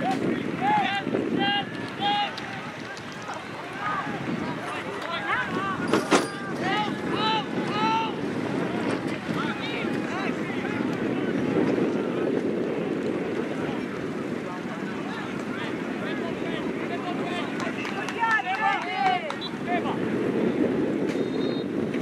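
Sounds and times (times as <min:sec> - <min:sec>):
distant shouts: 0:00.0 - 0:10.9, 0:16.1 - 0:20.0
wind noise on microphone: 0:00.0 - 0:22.0.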